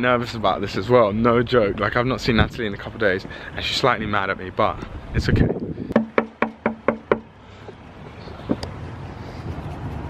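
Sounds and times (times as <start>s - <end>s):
knuckles knocking on door: 6.0s - 7.2s.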